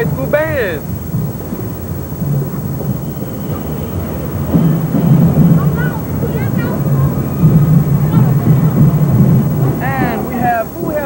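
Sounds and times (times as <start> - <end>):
street crowd noise: 0.0 - 11.0
wind on microphone: 0.0 - 11.0.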